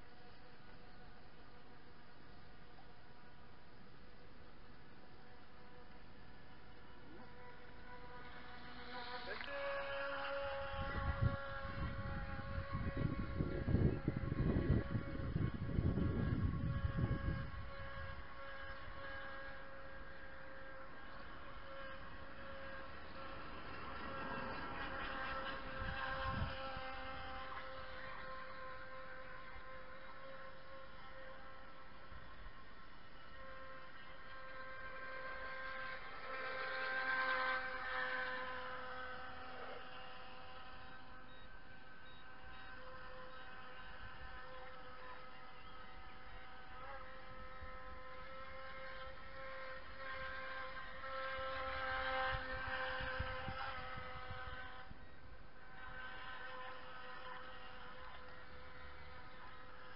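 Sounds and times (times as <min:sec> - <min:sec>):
model boat motor whining: 0:00.0 - 0:59.9.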